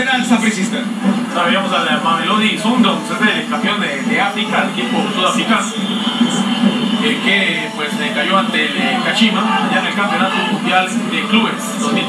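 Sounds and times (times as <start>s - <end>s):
football commentary on television: 0.0s - 12.0s
low background din: 0.0s - 12.0s.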